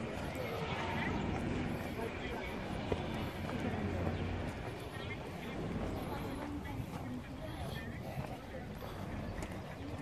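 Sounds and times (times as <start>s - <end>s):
faint voices: 0.0s - 10.0s
footsteps on stone paving: 0.0s - 10.0s.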